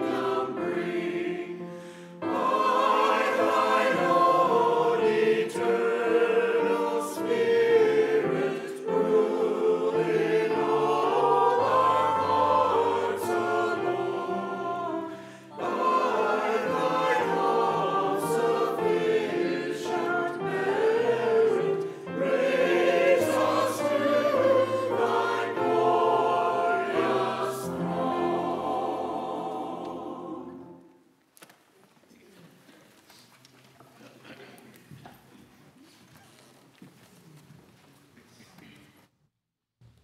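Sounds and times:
church choir singing: 0.0s - 31.1s.

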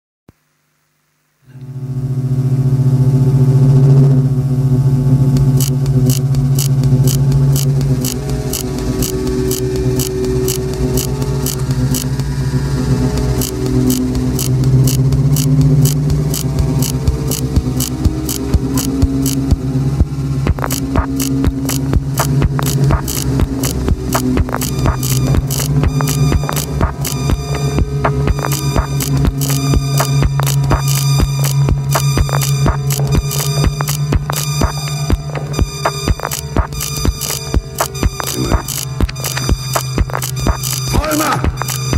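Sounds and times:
low synth drone: 1.5s - 41.9s
high ticking percussion: 4.9s - 41.9s.

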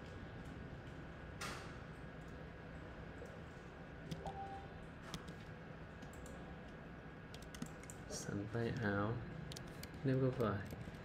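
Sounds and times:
computer keyboard key clicks: 7.3s - 8.0s.

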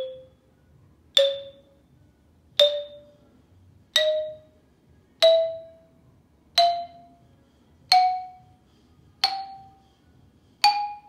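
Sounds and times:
xylophone notes struck with mallet: 0.0s - 0.4s, 1.2s - 1.8s, 2.6s - 3.2s, 3.9s - 4.6s, 5.2s - 6.0s, 6.6s - 7.2s, 7.9s - 8.6s, 9.2s - 9.8s, 10.6s - 11.0s.

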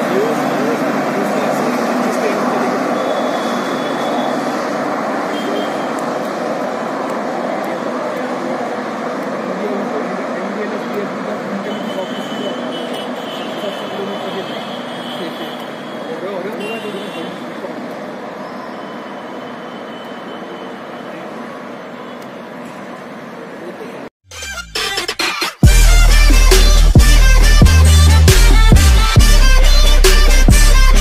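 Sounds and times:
indistinct voices: 0.0s - 19.0s
train coaches rumbling on track: 0.0s - 24.1s.

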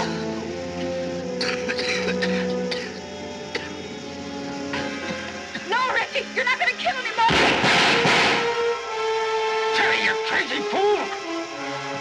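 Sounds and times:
loud noisy burst: 7.2s - 8.6s.

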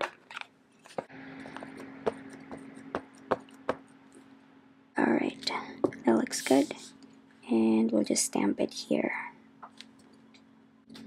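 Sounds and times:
faint steady hum: 0.0s - 11.0s
rubber stamp tapping ink pad: 1.0s - 3.8s.

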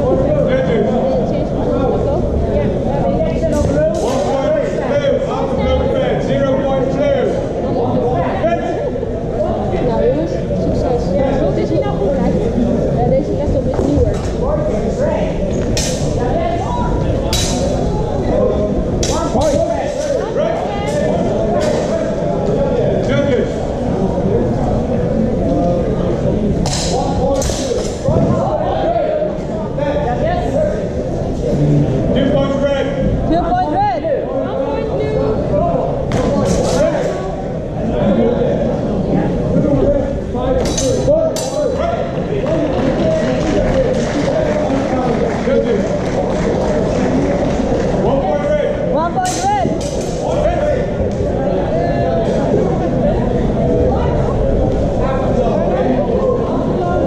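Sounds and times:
indistinct voices in echoing hall: 0.0s - 57.0s.

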